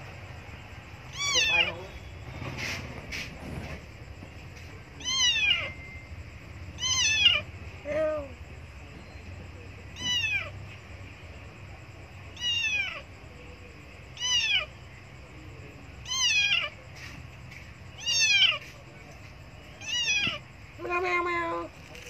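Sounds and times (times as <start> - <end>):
kitten meowing loudly: 1.1 - 1.8, 5.0 - 5.7, 6.8 - 7.4, 10.0 - 10.5, 12.4 - 13.0, 16.0 - 16.7, 18.0 - 18.6, 19.8 - 20.4.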